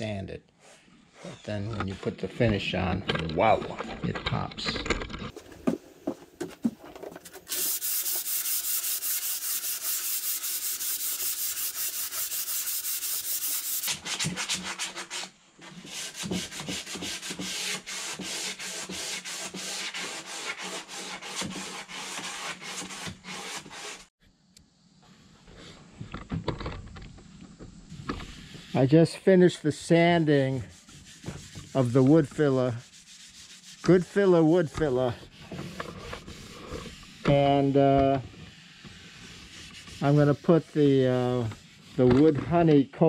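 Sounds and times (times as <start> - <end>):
sandpaper scraping on wood: 7.3 - 24.1, 27.9 - 29.1, 29.8 - 42.4.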